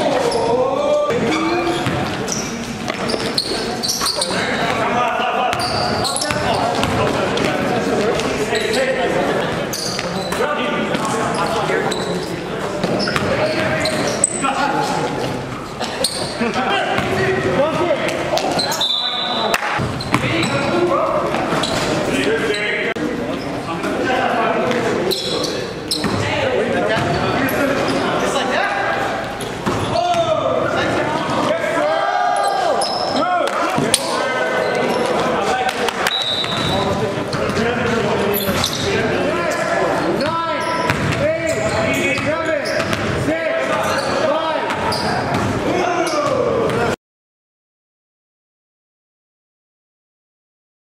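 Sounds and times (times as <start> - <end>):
players' voices calling: 0.0 - 47.0
basketball bouncing on gym floor: 1.8 - 2.2, 19.8 - 20.6, 40.2 - 43.2
basketball bouncing on floor: 40.9 - 41.2.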